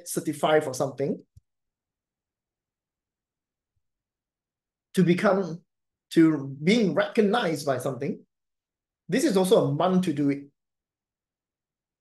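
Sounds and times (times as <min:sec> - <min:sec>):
man talking: 0:00.0 - 0:01.3, 0:05.0 - 0:08.2, 0:09.1 - 0:10.5.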